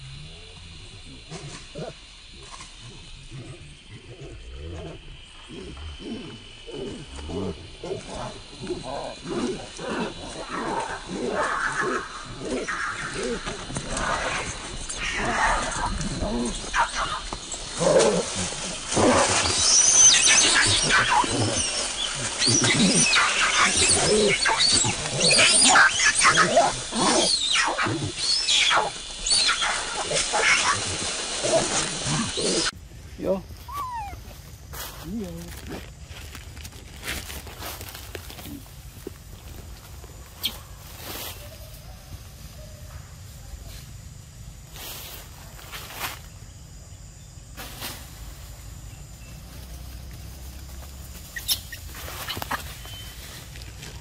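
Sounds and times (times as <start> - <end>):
macaques screaming and squealing: 10.3 - 32.8, 33.6 - 34.2.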